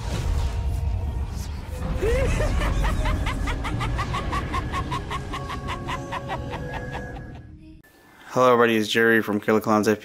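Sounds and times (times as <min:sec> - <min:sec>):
high-pitched cackling laugh: 0:02.0 - 0:07.6.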